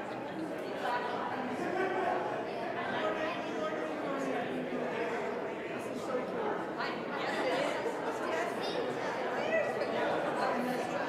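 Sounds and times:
indistinct chatter of many voices: 0.0 - 11.0.

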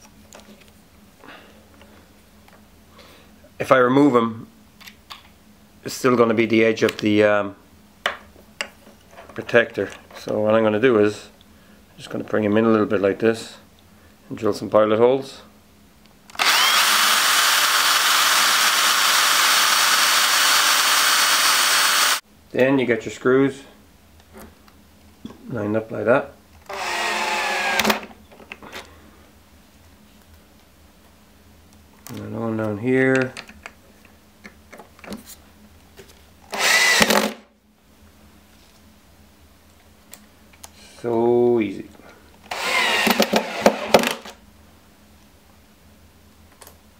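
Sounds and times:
drill driver drilling into wood: 16.4 - 22.2, 26.7 - 28.1, 36.5 - 37.4, 42.5 - 44.2.

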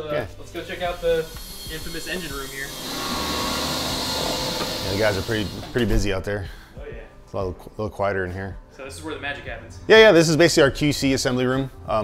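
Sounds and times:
machine shop hissing rush: 0.6 - 5.8.

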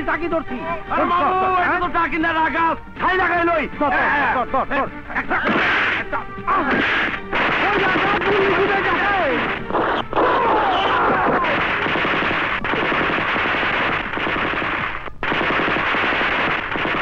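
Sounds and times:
voices shouting: 5.2 - 11.9
automatic gunfire: 6.7 - 17.0.

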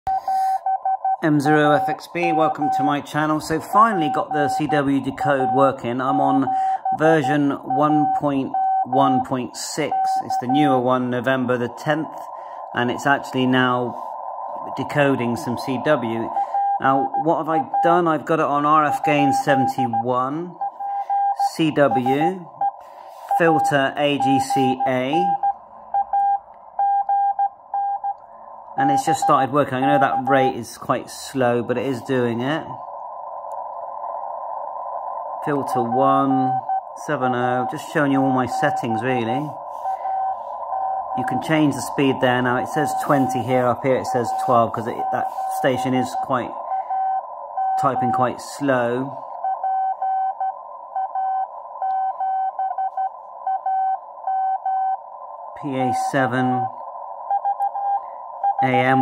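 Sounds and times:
morse code tone: 0.1 - 28.2, 28.8 - 30.6, 35.4 - 55.0, 57.3 - 59.0
receiver hiss: 0.1 - 59.0.

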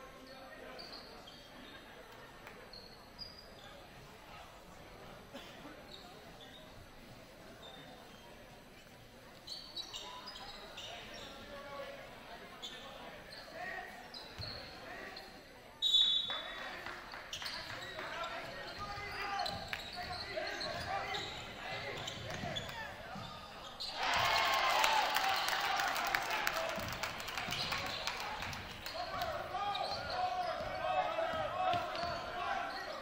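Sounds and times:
spectators chattering: 0.0 - 33.0
sneakers squeaking: 0.6 - 1.8, 2.5 - 4.1, 5.7 - 11.8, 12.4 - 24.4, 26.7 - 33.0.

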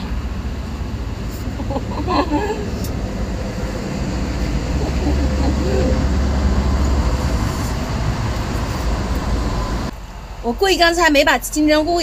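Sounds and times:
steady low rumble: 0.0 - 11.6.

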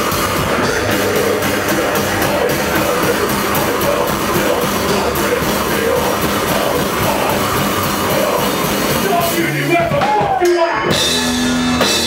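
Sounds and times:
hardcore band playing live: 0.0 - 12.0.

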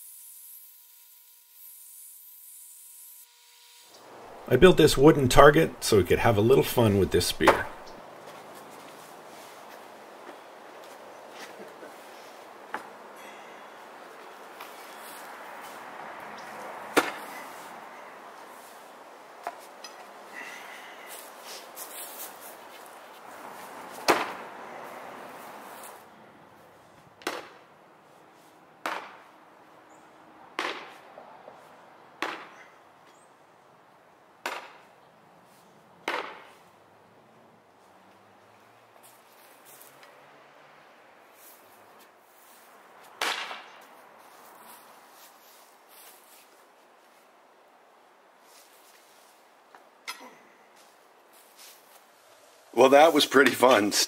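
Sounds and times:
spear point thudding into wood: 16.9 - 17.3, 24.0 - 24.4, 27.2 - 27.6, 28.8 - 29.2, 30.6 - 31.0, 32.2 - 32.6, 34.4 - 34.9, 36.0 - 36.6, 43.2 - 43.8.

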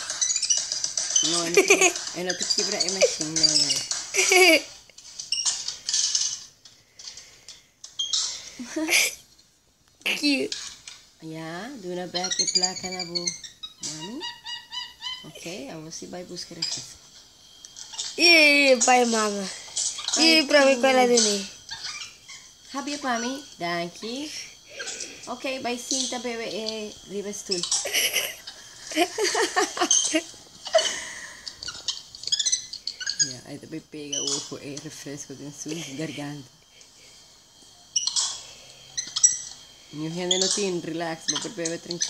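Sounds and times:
monkey squeaking calls: 0.0 - 4.6, 12.1 - 15.4, 19.8 - 23.5, 24.6 - 25.1, 27.5 - 33.4, 34.1 - 34.5, 38.0 - 38.4, 39.0 - 39.6, 40.3 - 42.0.

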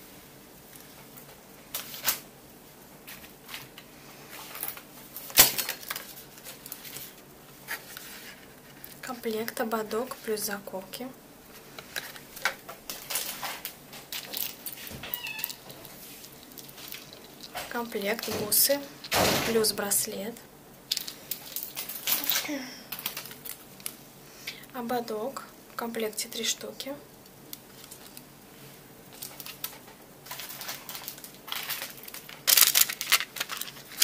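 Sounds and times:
packaging rustling and crinkling: 0.7 - 2.3, 3.0 - 10.2, 11.5 - 19.2, 20.9 - 24.0, 27.5 - 28.3, 29.1 - 34.0
high-pitched squeak-like call: 15.1 - 15.6.

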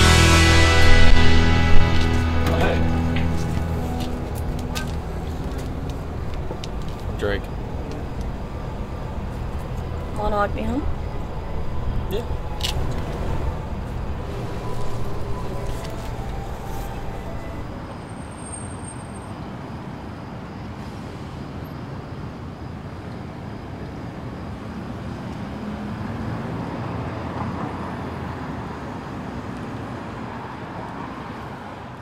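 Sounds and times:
distant road traffic rumble: 0.0 - 32.0.

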